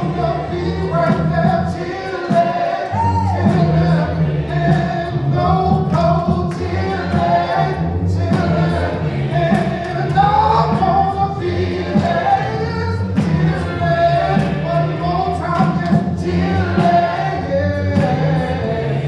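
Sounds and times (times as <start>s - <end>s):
sustained low instrumental notes: 0.0s - 19.0s
voices singing together: 0.0s - 19.0s.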